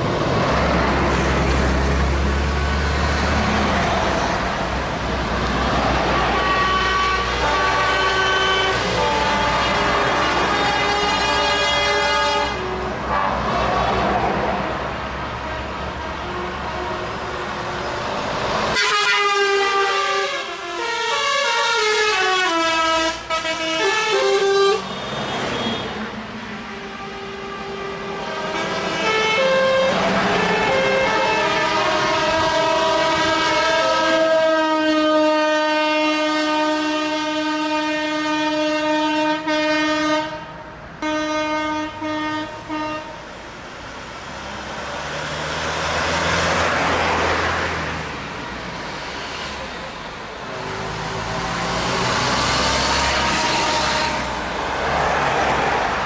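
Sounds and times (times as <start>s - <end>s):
truck engine and tyres passing: 0.0s - 56.0s
truck horn playing a tune: 6.0s - 13.6s, 18.7s - 25.9s, 26.7s - 43.2s, 53.0s - 54.4s
long truck horn blasts: 6.0s - 13.8s, 18.7s - 26.0s, 26.7s - 43.3s, 50.6s - 54.6s.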